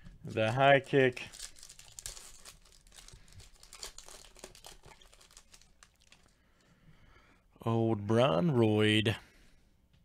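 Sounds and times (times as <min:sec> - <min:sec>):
foil wrapper crinkling: 0:00.2 - 0:06.4.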